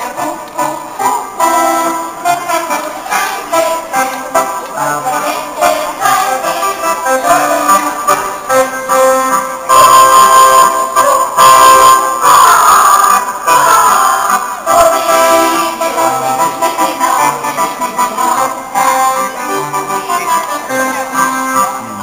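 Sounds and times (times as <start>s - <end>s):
folk music with accordion: 0.0s - 22.0s.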